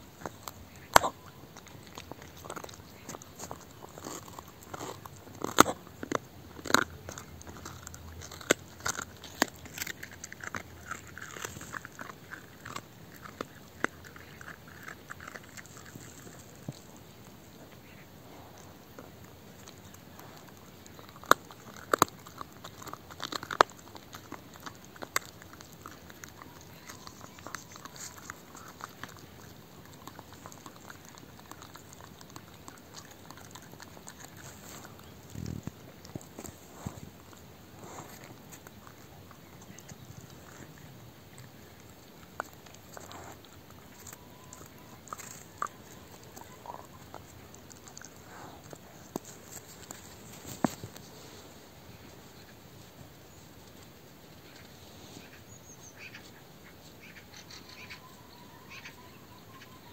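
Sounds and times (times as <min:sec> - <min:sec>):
dog chewing bone: 0:00.0 - 0:51.4.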